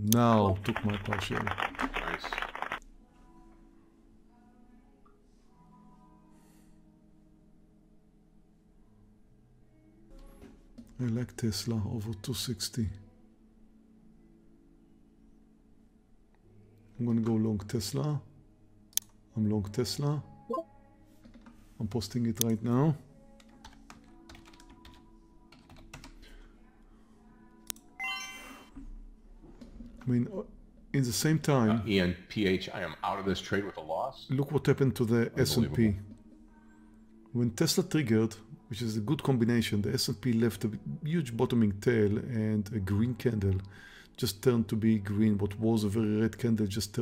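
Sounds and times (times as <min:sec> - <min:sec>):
faint background music: 0:00.0 - 0:47.0
rapid keyboard typing: 0:00.5 - 0:02.8, 0:21.2 - 0:21.6, 0:23.4 - 0:26.4.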